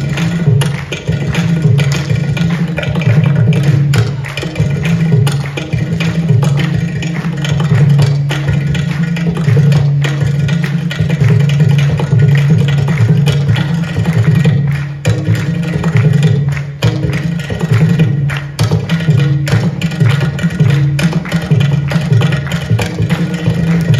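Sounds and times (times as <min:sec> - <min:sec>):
percussion ensemble over loudspeakers: 0:00.0 - 0:23.9.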